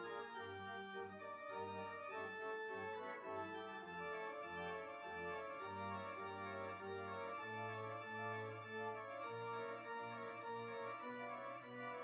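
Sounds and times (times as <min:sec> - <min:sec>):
organ playing slow chords: 0:00.0 - 0:12.0.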